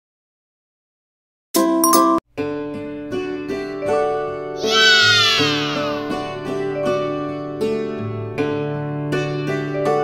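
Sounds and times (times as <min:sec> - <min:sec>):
light plucked children's music: 0:01.6 - 0:10.0
high sound effect sliding down: 0:04.6 - 0:06.2.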